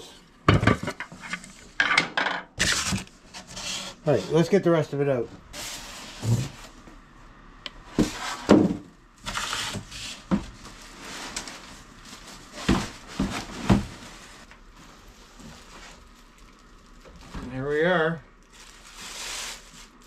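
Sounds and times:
styrofoam and cardboard scraping: 2.6s - 4.6s, 5.5s - 6.8s, 8.0s - 16.2s, 18.5s - 20.0s
plastic-wrapped saw handled: 9.3s - 17.4s, 18.4s - 20.0s.

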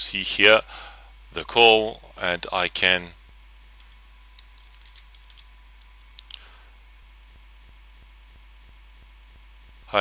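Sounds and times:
typing on computer keyboard: 4.4s - 6.1s.

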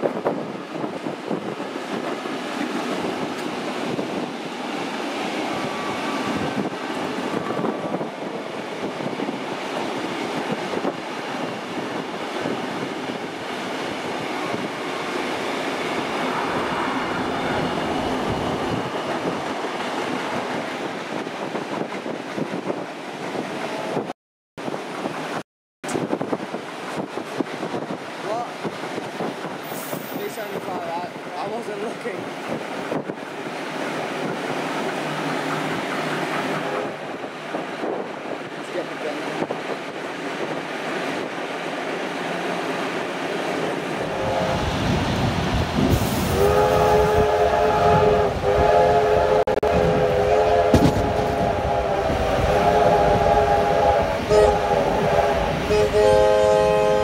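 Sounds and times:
train wheels rumbling and clattering: 0.0s - 24.1s, 25.9s - 56.2s
train chime whistle: 46.4s - 57.0s.

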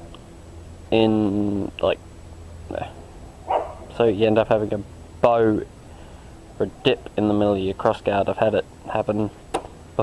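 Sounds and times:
dog barking: 3.5s - 3.9s.

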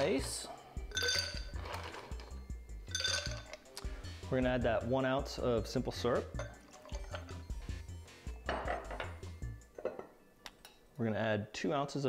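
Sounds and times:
background music with bass beat: 0.0s - 9.7s
ice clinking in cocktail shaker: 0.9s - 2.2s, 2.9s - 3.6s.

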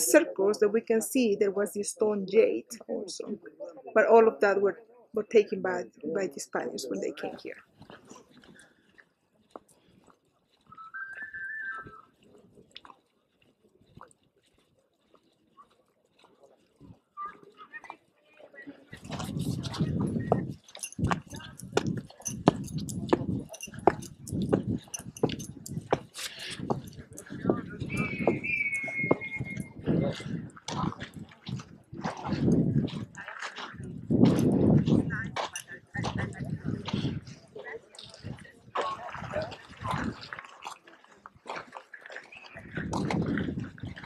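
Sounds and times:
people talking outdoors: 0.0s - 14.1s, 15.3s - 44.0s
whistle playing notes: 10.7s - 12.0s, 27.9s - 29.8s.

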